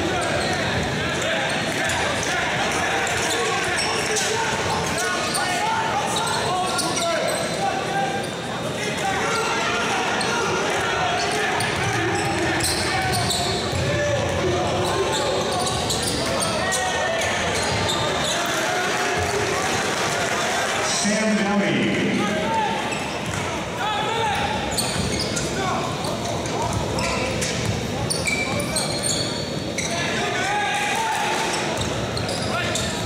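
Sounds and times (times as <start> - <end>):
crowd talking and calling out: 0.0 - 33.0
basketball bouncing on court: 26.7 - 27.9.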